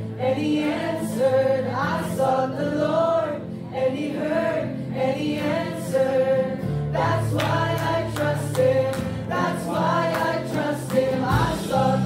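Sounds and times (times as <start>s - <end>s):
voices singing together: 0.0s - 12.0s
band playing keyboard guitars drums: 11.3s - 12.0s.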